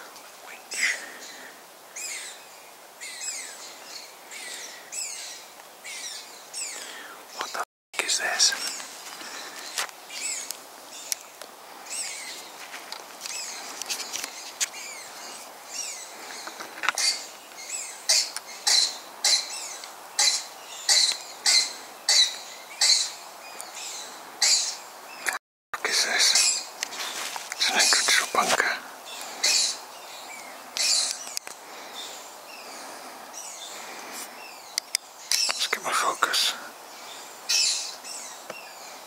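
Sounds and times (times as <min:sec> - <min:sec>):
footsteps crunching: 0:12.3 - 0:14.8, 0:26.8 - 0:28.6
rustling and scuffing: 0:12.3 - 0:14.8, 0:26.8 - 0:27.6.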